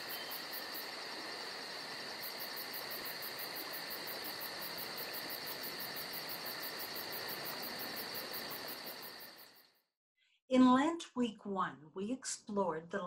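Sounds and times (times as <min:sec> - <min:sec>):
steady hiss: 0:00.0 - 0:09.6
insects chirping: 0:00.0 - 0:09.8.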